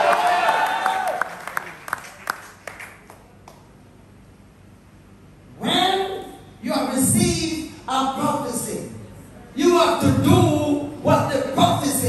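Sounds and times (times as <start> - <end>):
hand claps: 0.1 - 3.7.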